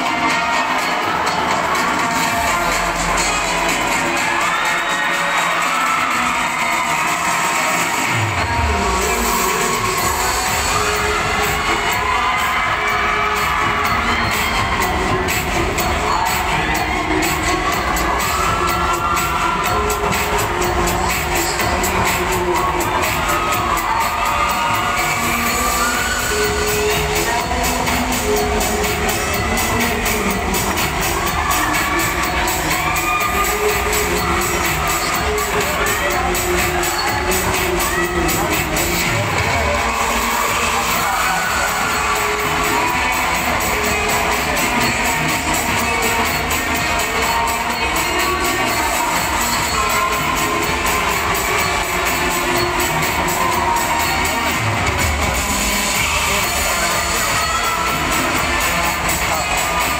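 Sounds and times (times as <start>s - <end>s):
crowd cheering and shouting: 0.0s - 59.9s
dance music: 0.0s - 59.9s.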